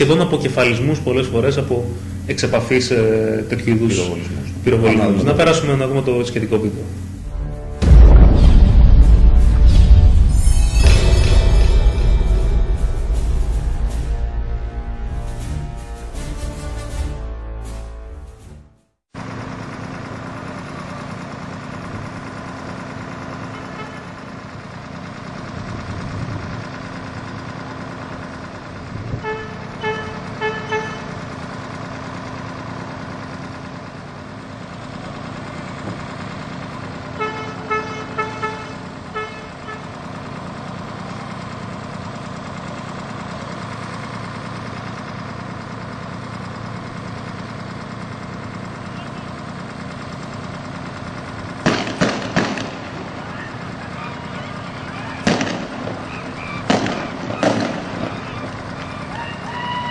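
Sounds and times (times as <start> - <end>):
street traffic engines: 0.0 - 8.0, 8.8 - 59.9
car horn short toots: 29.2 - 31.2, 37.2 - 39.9
shotgun shots: 51.6 - 53.3, 55.2 - 58.3.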